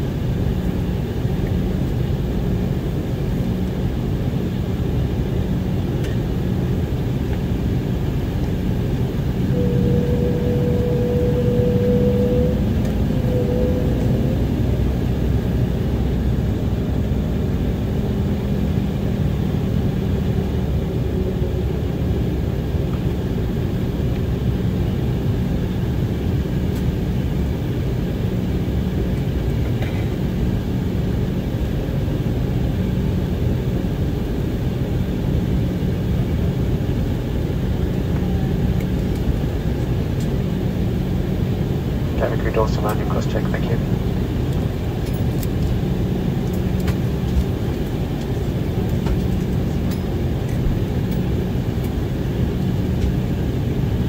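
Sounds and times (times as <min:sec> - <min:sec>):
jet cabin engine rumble: 0:00.0 - 0:54.0
high steady tone: 0:09.4 - 0:15.1.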